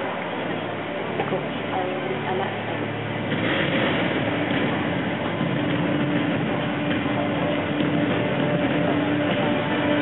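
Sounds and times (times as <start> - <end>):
muffled music over loudspeakers: 0.0 - 10.0
room noise rumble: 0.0 - 10.0.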